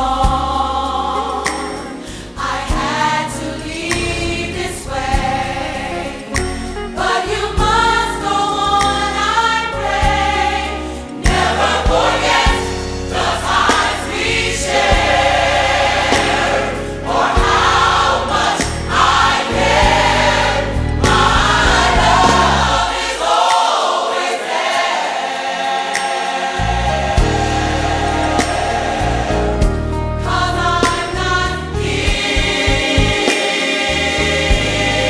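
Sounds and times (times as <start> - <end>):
choir singing gospel song: 0.0 - 35.0
low musical accompaniment: 0.0 - 35.0.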